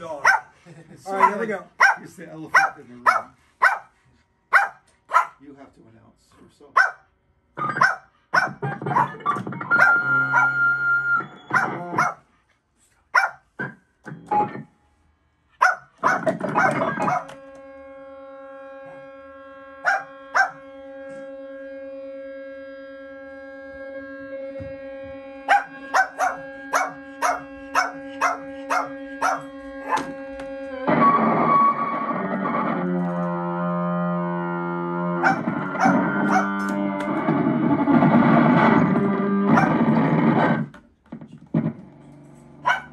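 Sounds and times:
steady pitched tone: 0:07.5 - 0:12.4, 0:13.5 - 0:40.7
sampling keyboard improvisation: 0:07.6 - 0:12.3, 0:13.2 - 0:42.9.

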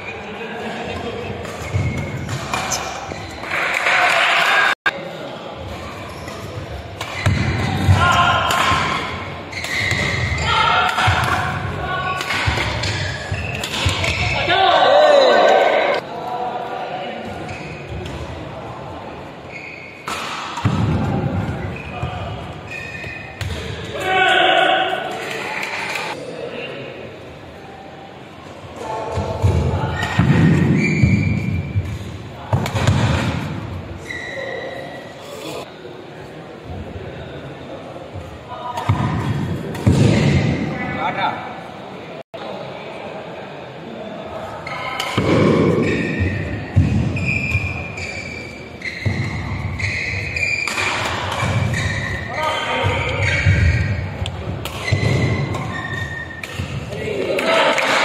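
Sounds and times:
shoe squeak: 0:01.6 - 0:03.6, 0:05.8 - 0:07.4, 0:09.5 - 0:10.6, 0:12.8 - 0:14.4, 0:17.4 - 0:18.0, 0:19.5 - 0:20.0, 0:21.6 - 0:23.4, 0:30.7 - 0:31.8, 0:34.0 - 0:35.4, 0:45.8 - 0:54.2, 0:54.8 - 0:56.4.

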